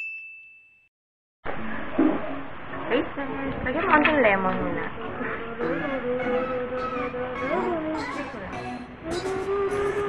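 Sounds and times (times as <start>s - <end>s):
bell-like ding: 0.0s - 0.9s
room noise: 1.5s - 10.0s.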